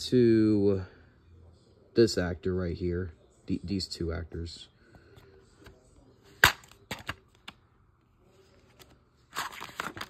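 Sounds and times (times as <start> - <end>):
plastic case snapping open: 6.4 - 7.5.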